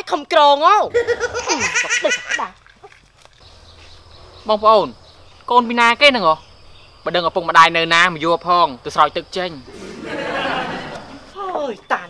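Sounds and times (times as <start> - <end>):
high insect drone: 0.4 - 12.0
person laughing loudly: 0.9 - 2.5.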